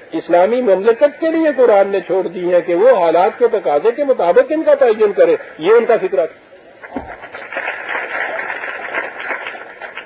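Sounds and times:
audience clapping: 6.8 - 10.0.

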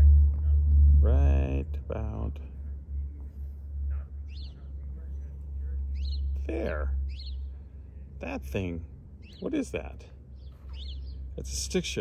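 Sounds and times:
steady low rumble: 0.0 - 12.0
bird chirp: 2.6 - 12.0.

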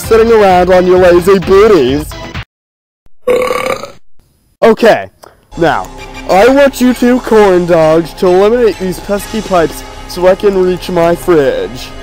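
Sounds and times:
cartoon character burping: 3.2 - 4.1.

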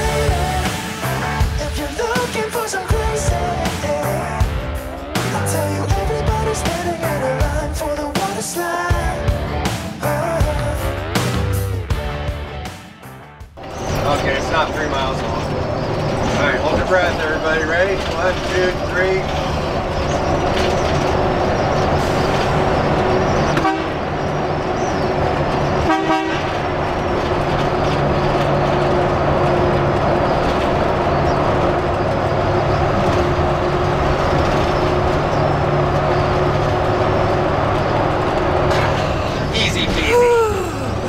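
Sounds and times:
engine and road noise: 0.0 - 41.0
horn toot: 23.5 - 24.1, 25.8 - 26.6.

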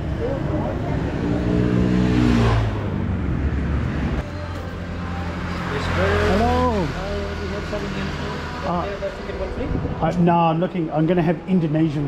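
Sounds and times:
vehicle engine passing by: 0.0 - 9.9.

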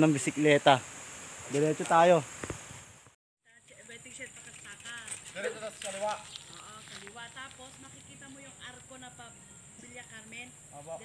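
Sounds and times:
steady high-pitched hiss: 0.0 - 11.0.

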